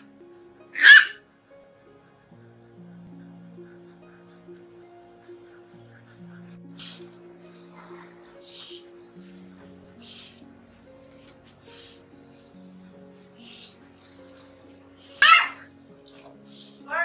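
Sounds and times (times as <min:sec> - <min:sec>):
background music: 0:00.0 - 0:17.0
puppy squealing: 0:00.7 - 0:01.2, 0:15.2 - 0:15.7
puppy yelping: 0:00.8 - 0:01.2, 0:15.2 - 0:15.7.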